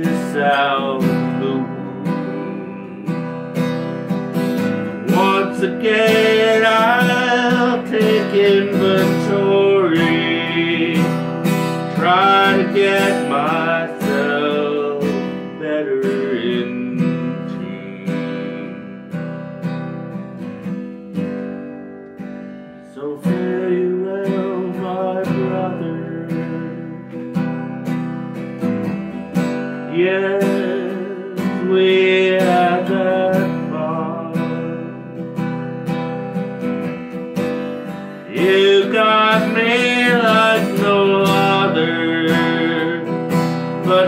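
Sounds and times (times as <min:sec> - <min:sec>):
acoustic guitar strumming: 0:00.0 - 0:44.0.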